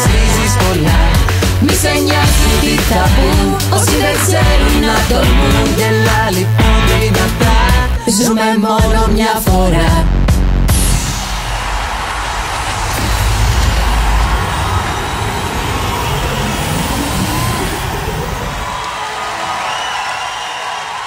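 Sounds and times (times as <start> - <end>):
heavy bass: 0.0 - 8.0, 8.8 - 18.8
electronic pop music: 0.0 - 19.6.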